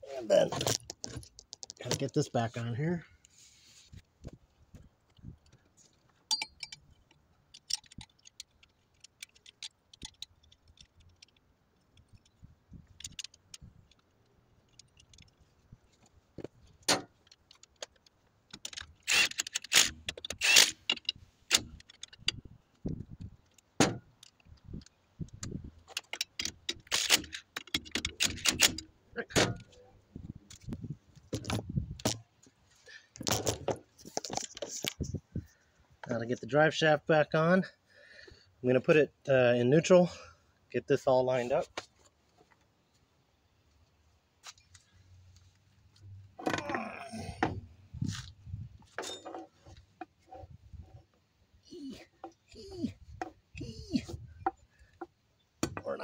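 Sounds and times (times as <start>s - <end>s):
metal tools clinking and clattering: 6.3s - 8.7s, 48.9s - 50.4s.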